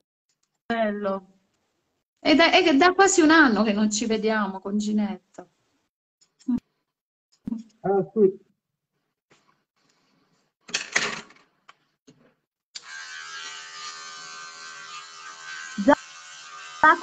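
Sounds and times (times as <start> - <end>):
electric hair clipper humming: 12.8 - 17.0.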